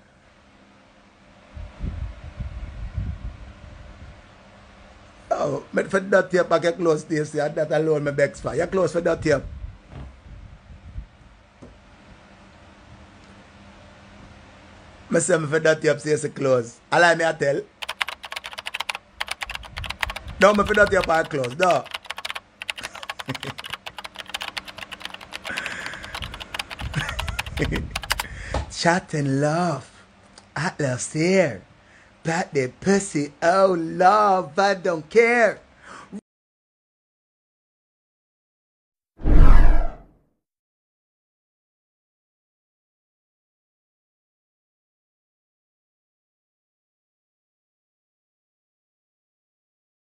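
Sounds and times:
keyboard typing: 0:17.8 - 0:28.3
man speaking: 0:20.4 - 0:21.9.

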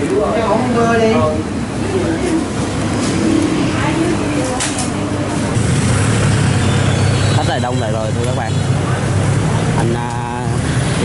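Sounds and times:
motorbike and car traffic hum: 0:01.2 - 0:11.0.

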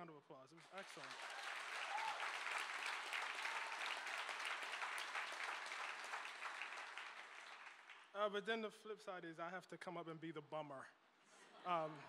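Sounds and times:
audience applauding: 0:00.6 - 0:08.1.

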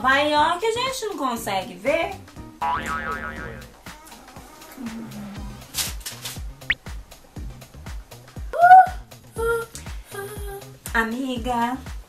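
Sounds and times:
wobbling comic tone: 0:02.6 - 0:03.7.

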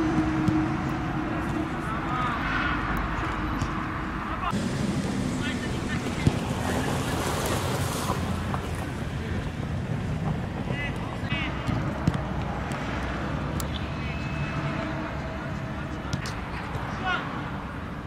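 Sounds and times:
players' voices: 0:01.4 - 0:07.6, 0:10.6 - 0:12.0.

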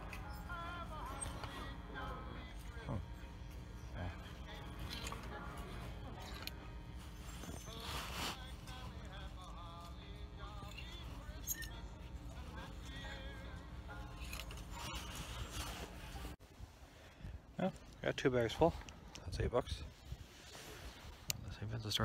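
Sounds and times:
background music: 0:00.0 - 0:16.4
low hum: 0:00.0 - 0:21.8
clothes hangers scraping metal rack: 0:14.0 - 0:16.4.

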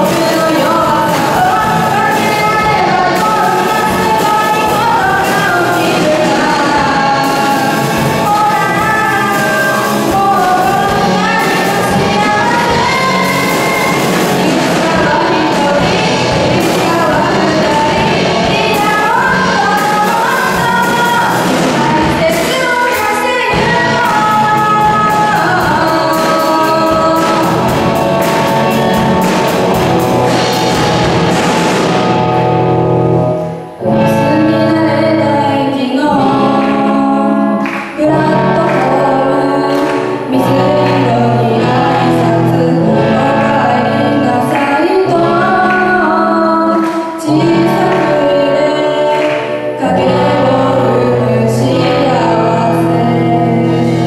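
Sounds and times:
girl singing: 0:00.0 - 0:29.2, 0:33.8 - 0:54.0
drum kit: 0:00.0 - 0:35.2, 0:36.0 - 0:54.0
bass guitar: 0:00.0 - 0:54.0
electric guitar: 0:00.0 - 0:54.0.

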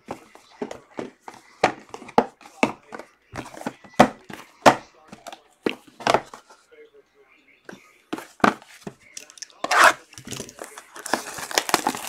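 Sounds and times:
cardboard boxes knocking on table: 0:00.0 - 0:06.4.

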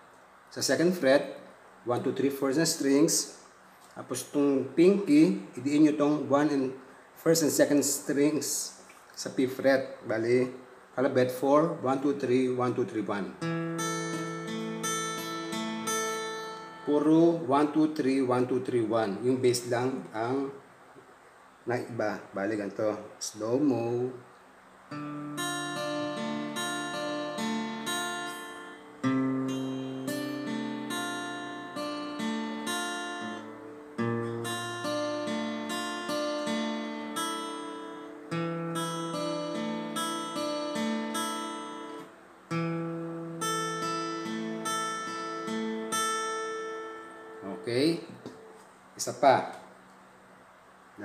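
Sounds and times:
fingerpicked acoustic guitar: 0:13.4 - 0:17.4, 0:24.9 - 0:48.8.

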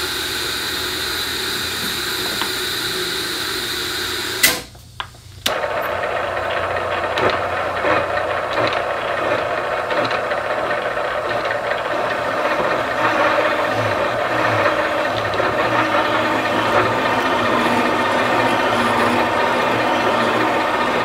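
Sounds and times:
metal cutting grinding: 0:05.5 - 0:21.0.

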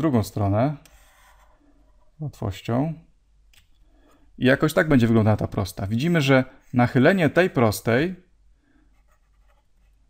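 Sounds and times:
stylus scratching on tablet: 0:00.9 - 0:02.1, 0:08.9 - 0:10.0.

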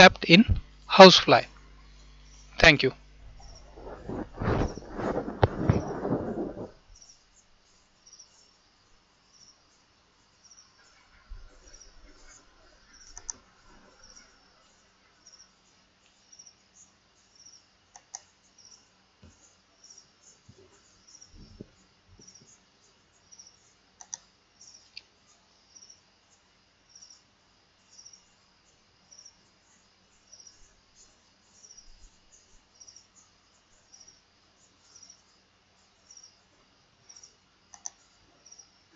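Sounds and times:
faint cricket chirping: 0:00.0 - 0:38.9
sharp click: 0:24.0 - 0:24.2, 0:37.7 - 0:38.0.

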